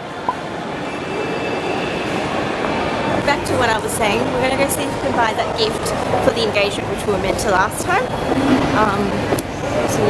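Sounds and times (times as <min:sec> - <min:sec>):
shopping centre background hum: 0:00.0 - 0:10.0.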